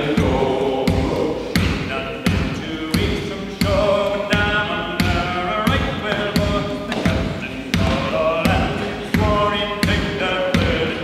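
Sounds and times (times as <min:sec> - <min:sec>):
men singing in close harmony: 0:00.0 - 0:11.0
steady percussive beat: 0:00.0 - 0:11.0.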